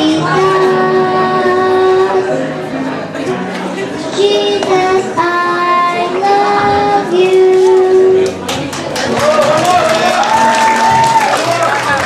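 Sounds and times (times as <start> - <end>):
girl singing into microphone: 0.0 - 2.9, 3.9 - 8.4
backing track music: 0.0 - 12.0
people clapping: 8.2 - 12.0.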